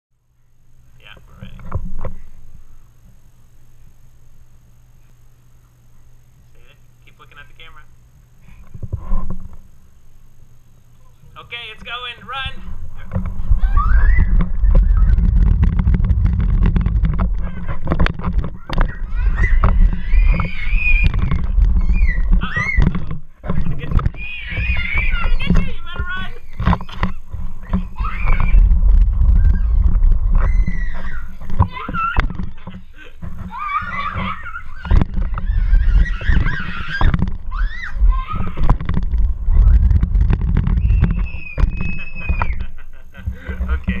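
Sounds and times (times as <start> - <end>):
loud steady low rumble: 9.7 - 33.4, 37.3 - 41.5
children squealing and shrieking: 13.4 - 15.3, 18.6 - 23.1, 24.1 - 38.8, 40.8 - 42.8.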